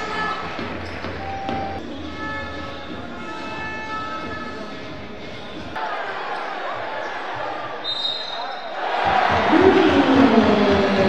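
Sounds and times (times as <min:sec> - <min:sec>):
arena crowd noise: 0:00.0 - 0:11.0
sneakers squeaking: 0:00.0 - 0:11.0
short high whistle: 0:07.8 - 0:08.7.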